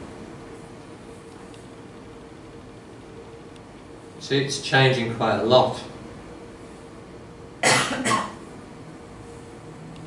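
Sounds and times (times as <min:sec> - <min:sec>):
man coughing: 0:07.6 - 0:08.4.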